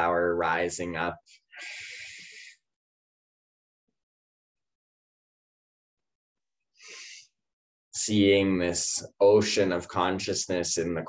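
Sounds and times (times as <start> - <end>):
faint breath: 1.5 - 2.6, 6.8 - 7.3.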